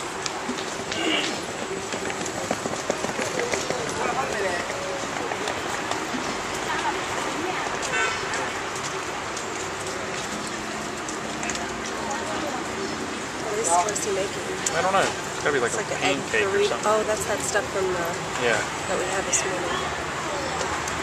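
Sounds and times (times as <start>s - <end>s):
steady street noise hiss: 0.0s - 21.0s
background voices talking: 0.2s - 21.0s.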